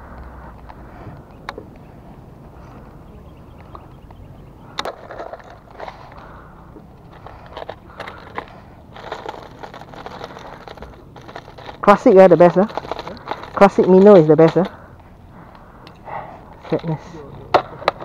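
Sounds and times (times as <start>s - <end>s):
plastic lures rattling: 4.8s - 14.9s.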